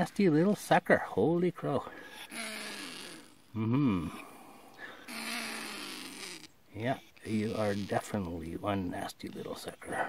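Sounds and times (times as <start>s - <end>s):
pine marten growling: 2.2s - 3.4s, 5.0s - 6.5s.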